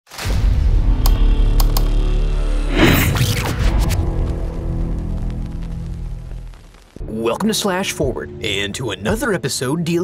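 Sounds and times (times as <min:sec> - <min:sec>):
dark heavy music with drone: 0:00.4 - 0:10.0
sharp clicks: 0:01.0 - 0:02.0.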